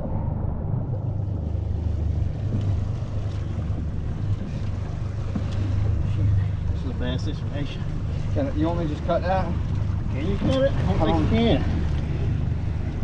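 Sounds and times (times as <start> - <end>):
outboard motors idling: 0.0 - 13.0
water noise: 0.0 - 13.0
wind: 0.0 - 13.0.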